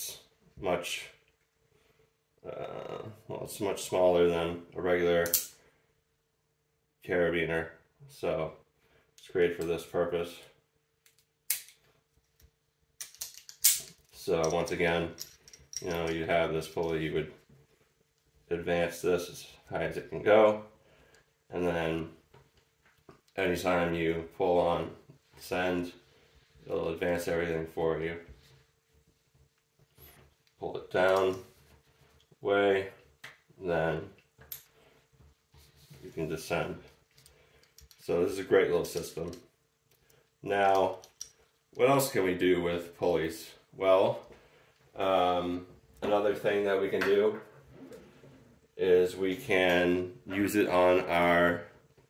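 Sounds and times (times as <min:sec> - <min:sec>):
metal climbing hardware clicking: 0:13.0 - 0:16.2.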